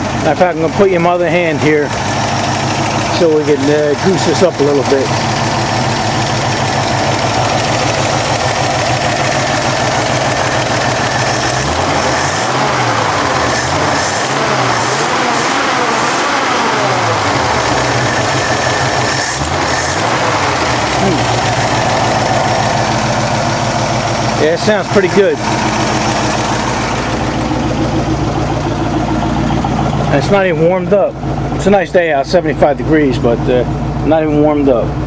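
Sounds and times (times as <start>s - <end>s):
pickup truck engine revving: 0.0s - 34.5s.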